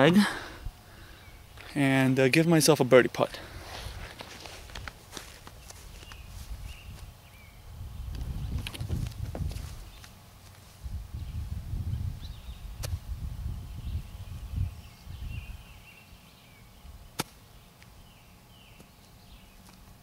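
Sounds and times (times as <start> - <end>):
small birds chirping: 0.8 - 2.3, 4.3 - 20.0
wind rumble on microphone: 6.0 - 10.0, 10.8 - 15.8.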